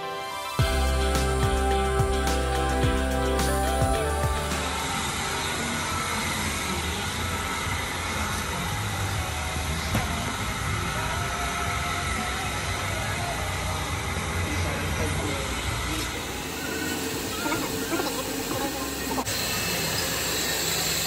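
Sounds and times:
even hiss: 0.0s - 6.9s.

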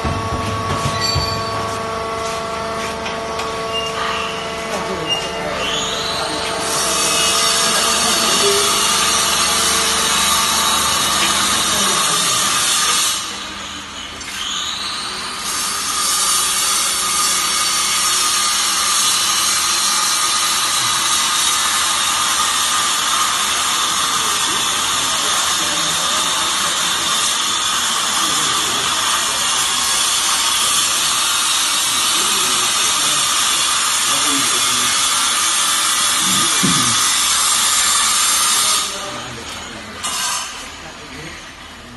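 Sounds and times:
hydraulic pump motor whining: 0.0s - 25.4s, 35.1s - 39.6s.

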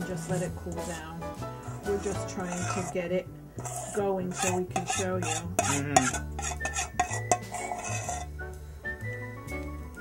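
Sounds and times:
background music: 0.0s - 10.0s
utensils clinking against bowl: 1.7s - 3.0s, 3.6s - 8.3s.

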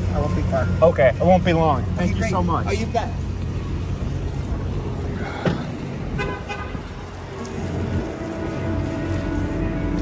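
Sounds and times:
low street rumble: 0.0s - 10.0s
car horn toot: 6.1s - 6.8s.

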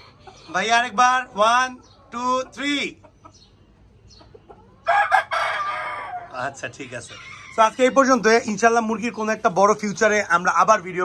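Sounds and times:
chickens calling: 0.0s - 11.0s
rooster crowing: 4.8s - 6.4s.

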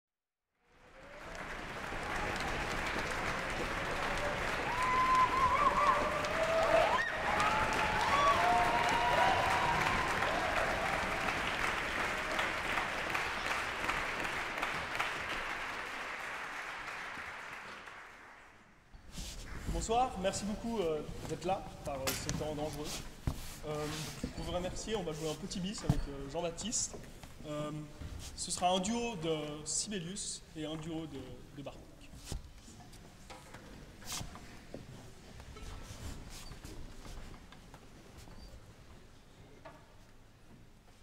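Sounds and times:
audience applauding: 0.8s - 18.8s.

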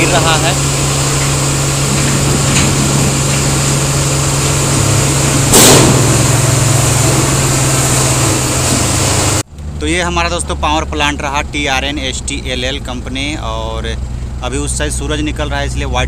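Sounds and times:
truck diesel engine running: 0.0s - 16.0s.

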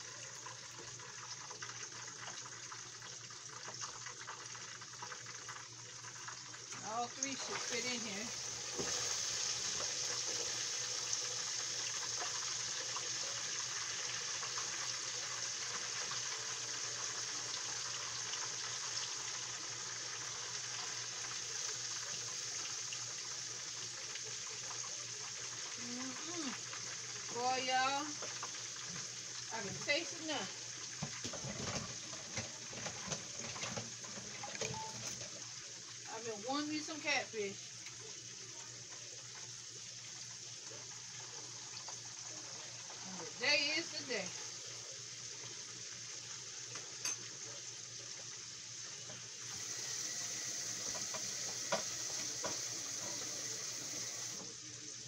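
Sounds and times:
fish frying in hot grease: 0.0s - 55.0s
person's voice: 6.8s - 8.3s.

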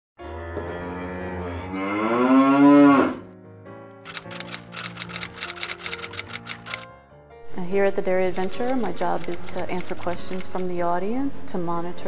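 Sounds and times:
cow mooing: 0.2s - 3.3s
fast sharp clicks: 4.1s - 6.9s, 8.4s - 10.7s.

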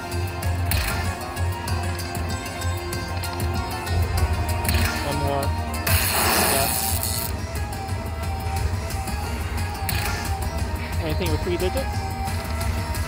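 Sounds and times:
slot machine music and effects: 0.0s - 13.0s.

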